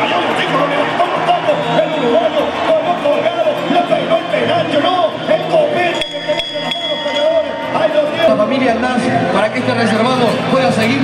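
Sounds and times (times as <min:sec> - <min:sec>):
crowd noise: 0:00.0 - 0:11.0
music: 0:00.0 - 0:11.0.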